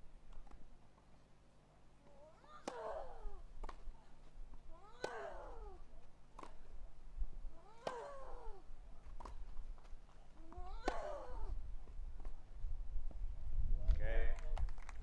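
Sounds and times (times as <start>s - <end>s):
woman grunting: 2.2s - 3.4s, 4.7s - 5.8s, 7.6s - 8.7s, 10.5s - 11.6s.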